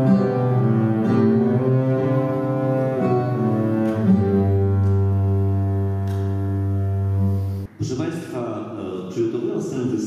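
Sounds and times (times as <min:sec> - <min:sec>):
double bass bowing low note: 0:00.0 - 0:07.7.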